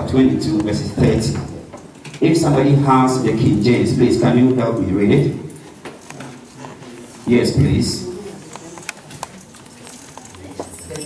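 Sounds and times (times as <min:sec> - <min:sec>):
low room murmur: 0:00.0 - 0:11.0.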